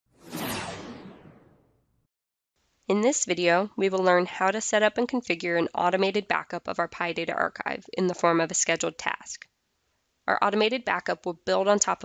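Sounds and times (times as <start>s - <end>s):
whoosh: 0.1s - 2.0s.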